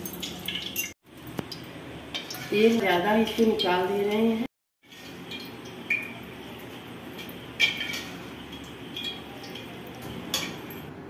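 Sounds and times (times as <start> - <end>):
steel ladle clinking on bowl: 7.2 - 10.9.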